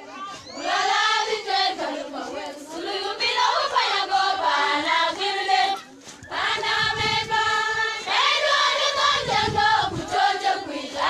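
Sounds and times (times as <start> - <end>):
girls singing in chorus: 0.4 - 11.0.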